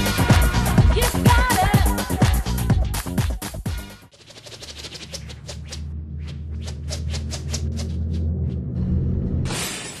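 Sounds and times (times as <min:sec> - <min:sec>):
low synthesized drone: 0:05.7 - 0:09.5.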